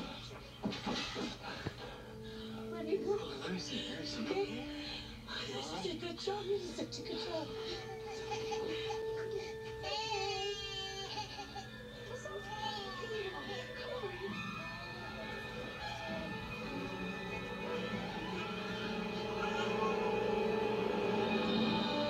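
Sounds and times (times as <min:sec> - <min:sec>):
baby crying and wailing: 0:07.1 - 0:13.7
tense orchestral music: 0:14.3 - 0:22.0.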